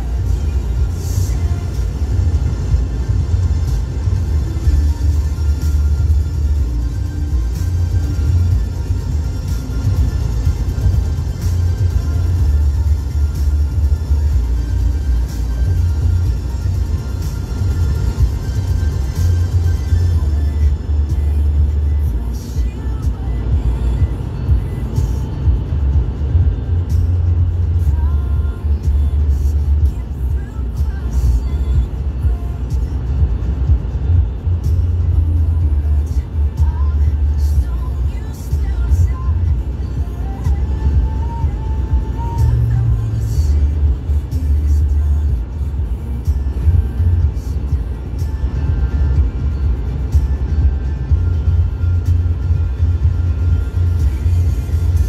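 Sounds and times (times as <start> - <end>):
car cabin rumble: 0.0 - 55.0
music playing: 0.0 - 55.0.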